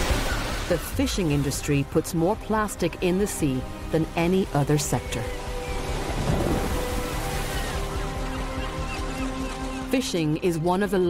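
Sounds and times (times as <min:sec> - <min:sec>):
waves churning: 0:00.0 - 0:09.8.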